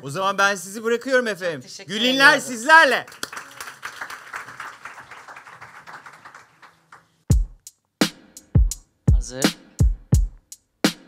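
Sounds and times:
audience applause: 2.9s - 7.2s.

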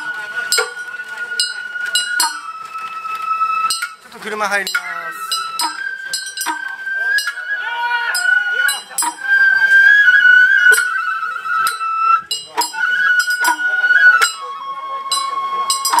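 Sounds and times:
sharp percussion strikes: 0.0s - 2.6s, 3.4s - 7.5s, 8.1s - 9.5s, 10.5s - 16.0s
bamboo flute long notes: 0.0s - 16.0s.

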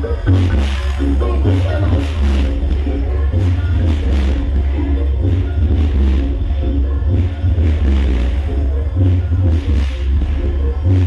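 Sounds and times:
loud music with heavy bass: 0.0s - 11.0s.

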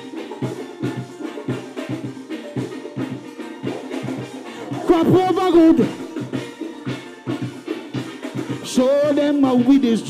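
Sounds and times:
snare and bass drums beat: 0.0s - 10.0s.

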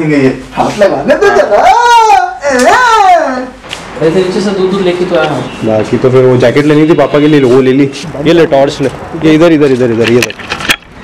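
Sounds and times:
person crying out high-pitched: 1.2s - 3.6s.

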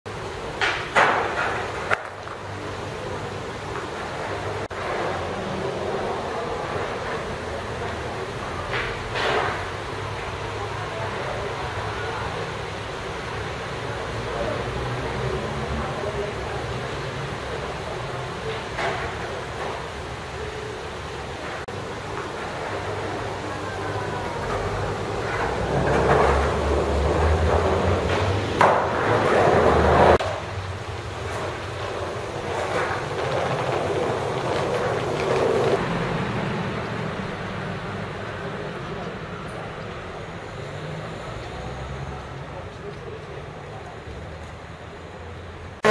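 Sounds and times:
distant traffic: 0.1s - 45.9s.

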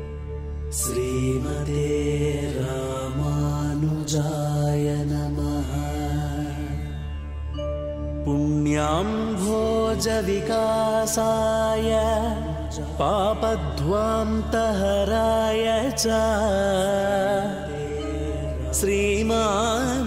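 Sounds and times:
chanted vocal line: 0.0s - 20.0s.

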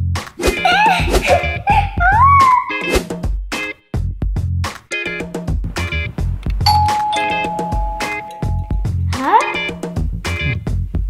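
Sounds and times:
background music with steady beat: 0.0s - 11.0s
two-note doorbell chime: 6.7s - 9.0s.

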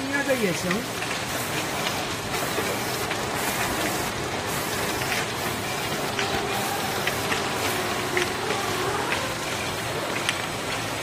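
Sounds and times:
faint machine clicks: 0.0s - 11.0s
labeling machine running: 0.0s - 11.0s.

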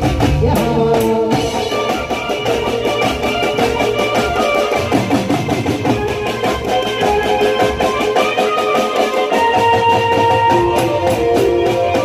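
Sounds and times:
drums keeping quick beat: 0.0s - 12.0s.

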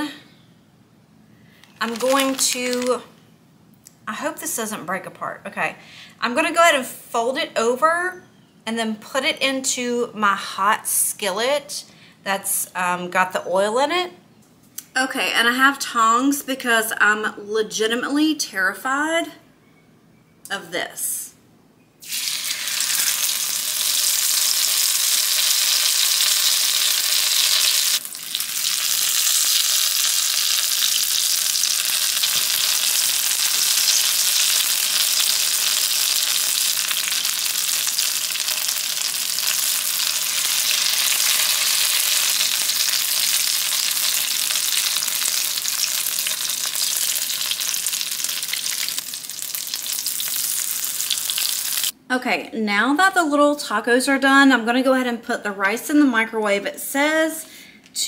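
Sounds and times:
oil sizzling in skillet: 22.0s - 52.0s.

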